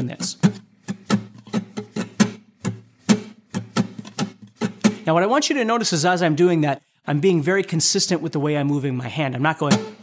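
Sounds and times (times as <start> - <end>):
guitar strumming: 0.0 - 5.1, 9.6 - 10.0.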